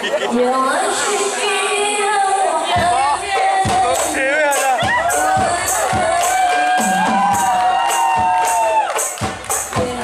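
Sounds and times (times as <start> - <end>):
singers holding long note: 4.9 - 9.0.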